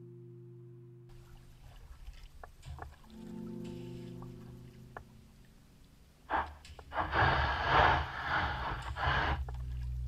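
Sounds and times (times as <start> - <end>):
kayak paddle strokes in water: 1.1 - 5.5, 6.2 - 10.0
background music chords: 3.0 - 6.2.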